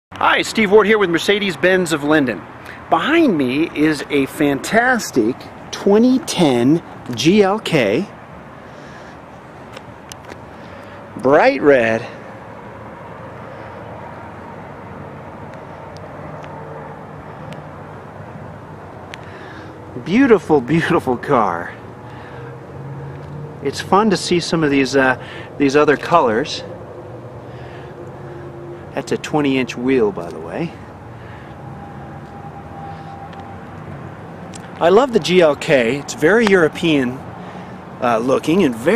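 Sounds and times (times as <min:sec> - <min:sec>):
vehicle noise hum: 0:00.1 - 0:38.9
low drone: 0:30.8 - 0:34.7.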